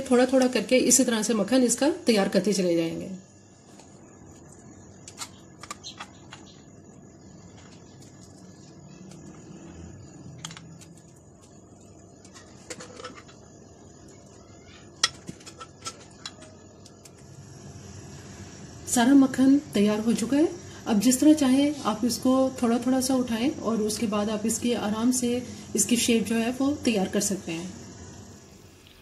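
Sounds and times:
faint steady background noise: 0.0s - 29.0s.

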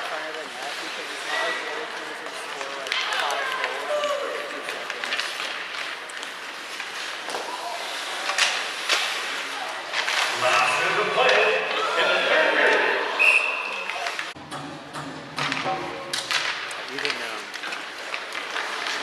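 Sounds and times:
hockey sticks and puck knocking: 14.2s - 19.0s.

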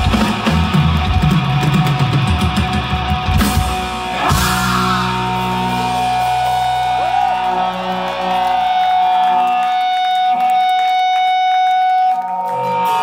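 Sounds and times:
bass guitar note: 0.0s - 7.7s.

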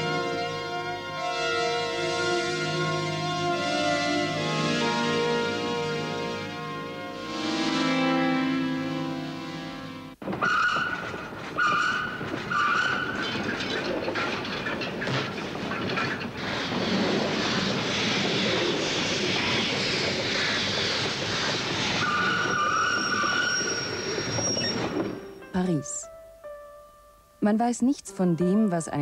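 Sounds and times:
background music: 0.0s - 10.2s, 25.2s - 29.0s
steam train rushing: 0.0s - 25.8s
high whistle tones: 22.0s - 25.5s.

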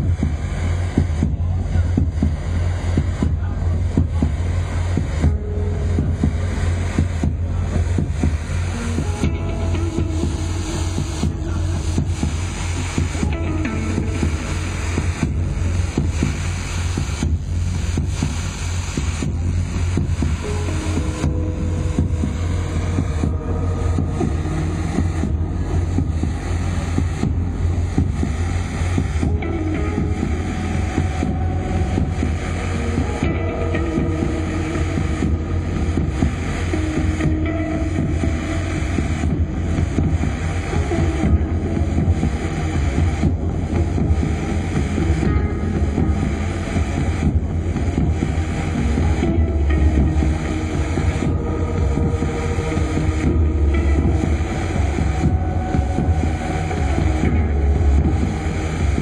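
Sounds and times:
live experimental rock music: 0.0s - 59.0s.

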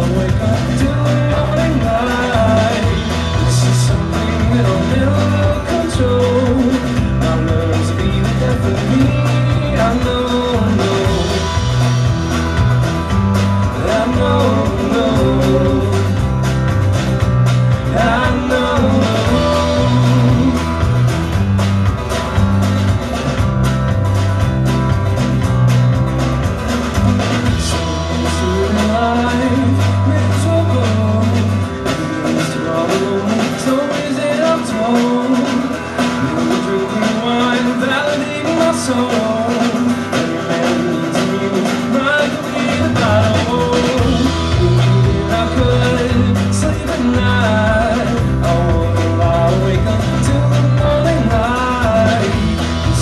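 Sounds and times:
drum kit beat: 0.0s - 53.0s
electric bass: 0.0s - 53.0s
electric guitar: 0.0s - 53.0s
strummed acoustic guitar: 0.0s - 53.0s.

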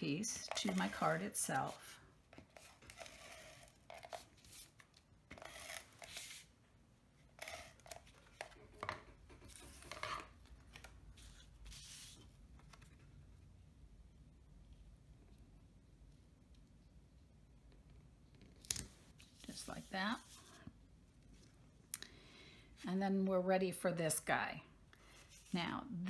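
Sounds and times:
cardstock rustling and scraping: 0.4s - 6.5s, 7.3s - 13.0s.

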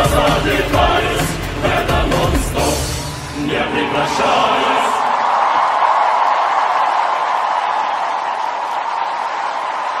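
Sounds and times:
audience applauding and cheering: 4.8s - 10.0s.

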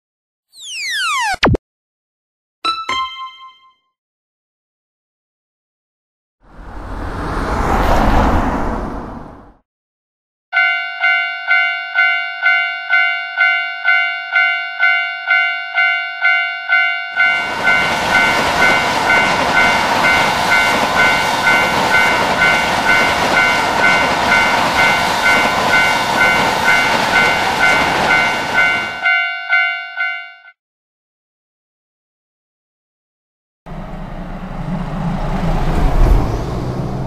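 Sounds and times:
train rushing past: 6.5s - 9.6s, 17.2s - 29.0s, 33.7s - 37.0s
level crossing warning bell: 10.6s - 30.6s.

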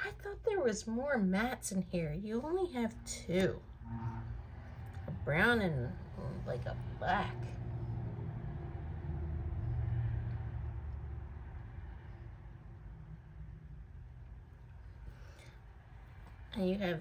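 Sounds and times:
low engine rumble: 0.0s - 17.0s.

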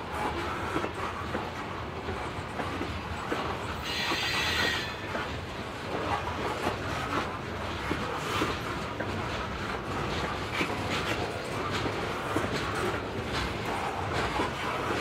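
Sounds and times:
train wheels clattering on rails: 0.0s - 15.0s.

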